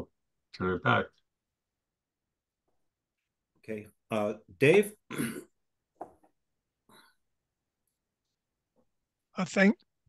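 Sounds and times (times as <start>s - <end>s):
man clearing his throat: 5.1s - 5.6s.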